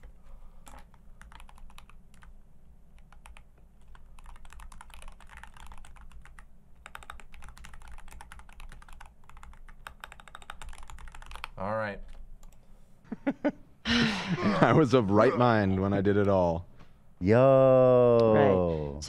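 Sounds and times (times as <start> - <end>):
typing on computer keyboard: 0.0 - 12.6
steady low hum: 0.0 - 19.0.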